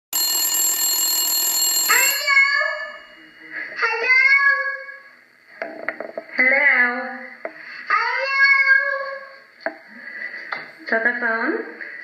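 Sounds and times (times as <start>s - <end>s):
telephone bell ringing: 0.1s - 3.6s.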